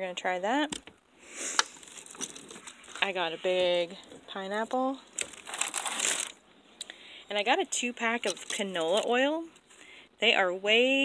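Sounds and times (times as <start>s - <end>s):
groceries rustling and crinkling: 1.6s - 6.5s, 8.1s - 9.8s.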